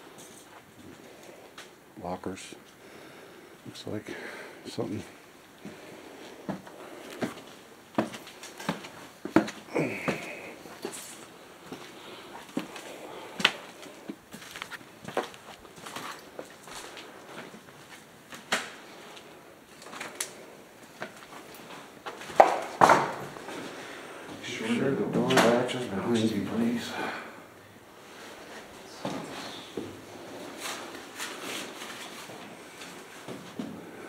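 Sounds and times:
footsteps on concrete stairs: 0:06.4 - 0:11.0, 0:11.6 - 0:18.4.

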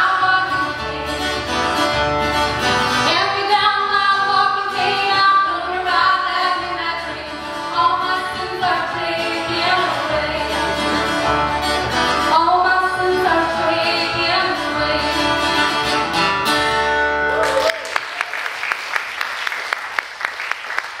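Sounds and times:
woman singing: 0:00.0 - 0:01.4, 0:03.0 - 0:11.0, 0:12.3 - 0:15.7
upright bass: 0:00.0 - 0:03.9, 0:05.2 - 0:17.6
acoustic guitar: 0:00.0 - 0:17.5
audience applauding: 0:17.3 - 0:21.0.

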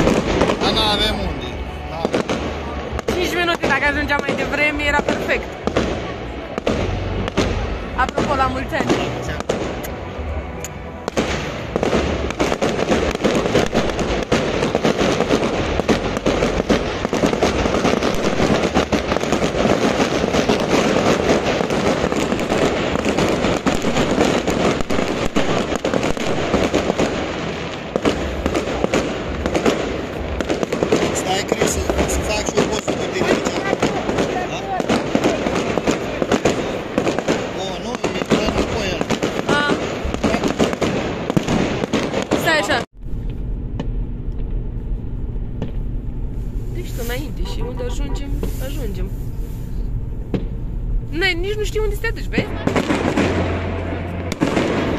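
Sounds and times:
fireworks crackling and banging: 0:00.0 - 0:54.9.

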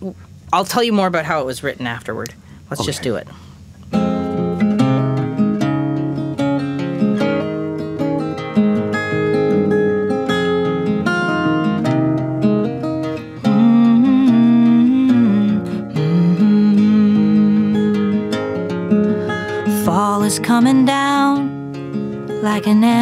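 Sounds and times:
acoustic guitar playing: 0:02.8 - 0:23.0.

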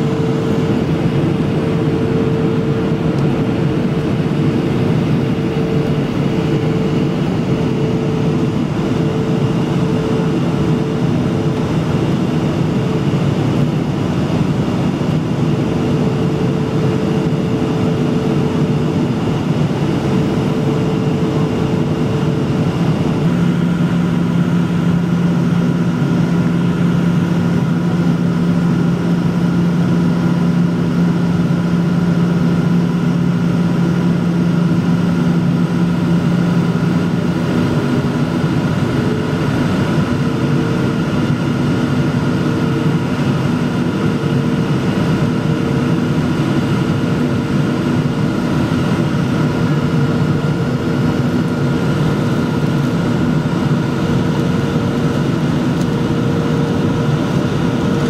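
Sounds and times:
jet engines humming: 0:00.0 - 0:58.0
low engine tone: 0:00.0 - 0:58.0.

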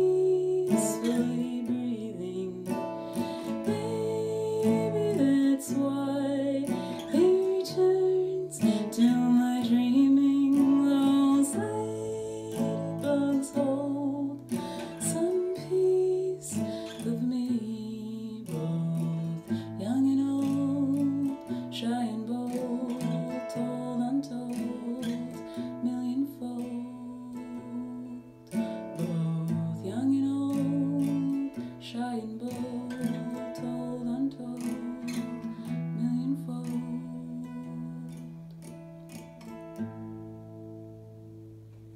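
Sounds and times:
woman singing: 0:00.0 - 0:38.9
acoustic guitar playing: 0:00.0 - 0:41.9.

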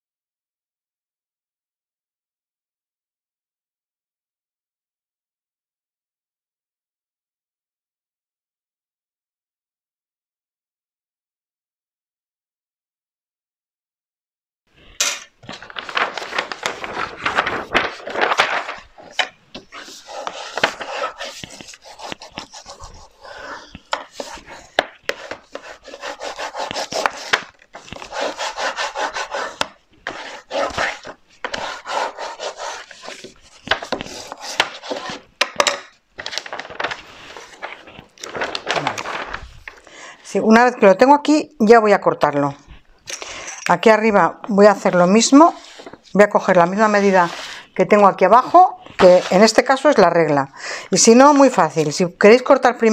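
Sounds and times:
hands rubbing paper: 0:15.0 - 0:35.4, 0:36.2 - 0:39.8, 0:46.7 - 0:47.7, 0:48.4 - 0:49.8.

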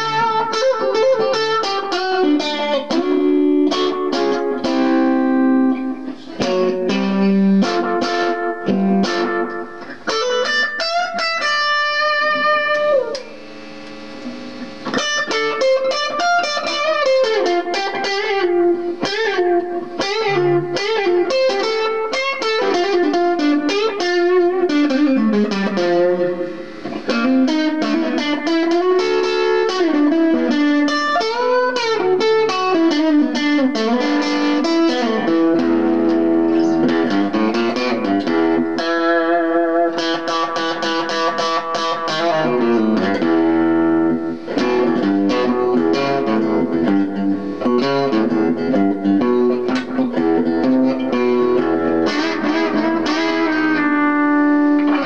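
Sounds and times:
blues electric guitar: 0:00.0 - 0:55.0.

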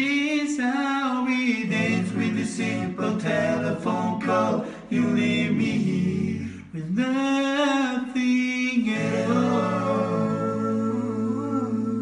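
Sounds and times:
male vocal group singing a cappella: 0:00.0 - 0:12.0.

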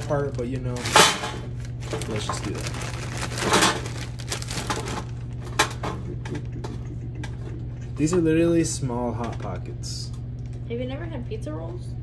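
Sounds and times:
plastic bag crinkling: 0:00.0 - 0:05.5
steady low hum: 0:00.0 - 0:12.0.

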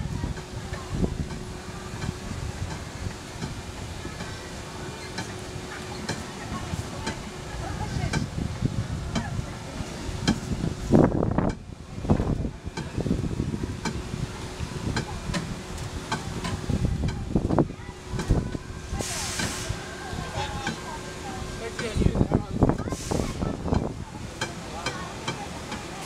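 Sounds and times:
roller coaster rumbling on track: 0:00.0 - 0:26.0
wheels clicking over rail joints: 0:00.0 - 0:26.0.

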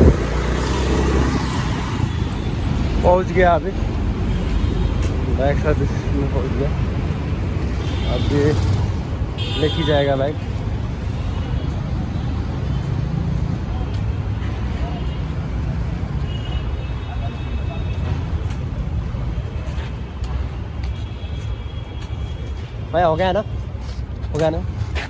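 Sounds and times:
low rumble of traffic: 0:00.0 - 0:25.0.

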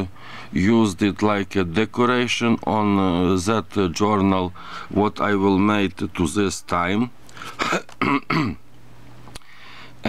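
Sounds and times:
person clearing throat: 0:07.6 - 0:08.6.

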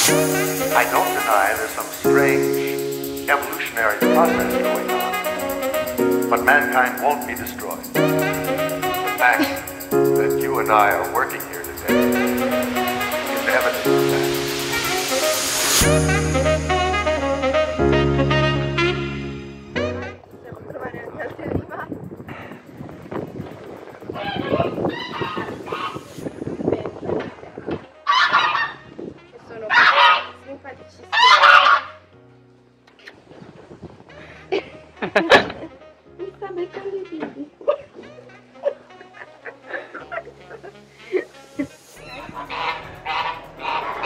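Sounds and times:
geese honking: 0:00.0 - 0:15.8, 0:24.2 - 0:26.1, 0:28.1 - 0:28.8, 0:29.7 - 0:30.4, 0:31.1 - 0:32.0, 0:42.0 - 0:44.0
goose honking: 0:28.1 - 0:28.8, 0:29.7 - 0:30.4, 0:31.1 - 0:32.0, 0:42.0 - 0:44.0.

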